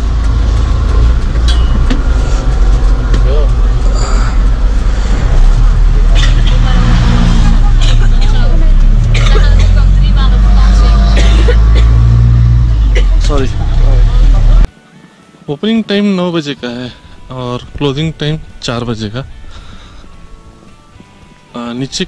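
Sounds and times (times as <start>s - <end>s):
bus engine rumbling: 0.0s - 14.7s, 16.7s - 20.7s.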